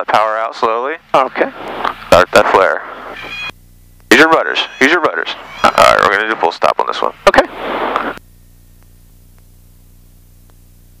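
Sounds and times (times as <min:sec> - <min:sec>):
low electrical hum: 0:00.0 - 0:11.0
open-mic noise rush: 0:00.0 - 0:11.0.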